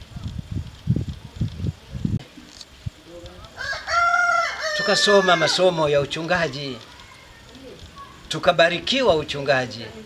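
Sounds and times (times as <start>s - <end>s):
rooster crowing: 3.5s - 5.9s.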